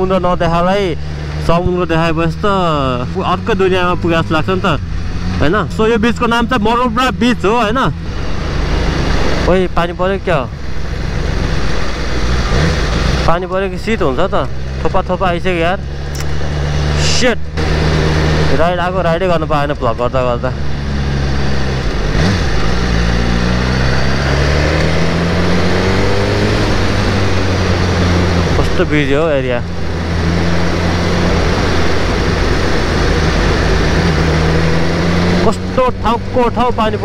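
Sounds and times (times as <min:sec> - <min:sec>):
motorcycle engine cruising: 0:00.0 - 0:37.0
wind and road noise: 0:00.0 - 0:37.0.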